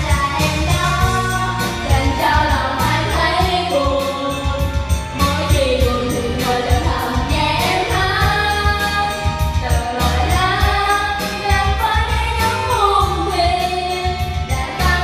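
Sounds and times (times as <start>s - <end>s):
backing track with beat and bass: 0.0s - 15.0s
women singing karaoke: 0.0s - 15.0s.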